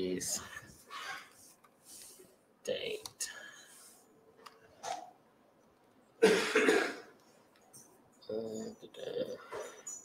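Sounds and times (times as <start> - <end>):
person coughing: 6.2 - 7.1.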